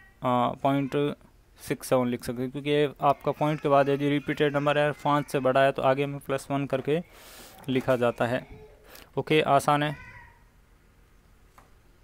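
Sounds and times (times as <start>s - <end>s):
faint high-pitched animal call: 9.8s - 10.5s.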